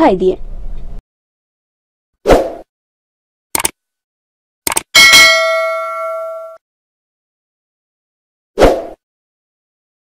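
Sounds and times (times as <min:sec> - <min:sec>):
clicks: 0:03.6 - 0:03.8, 0:04.7 - 0:04.9
notification bell ding: 0:05.0 - 0:06.6.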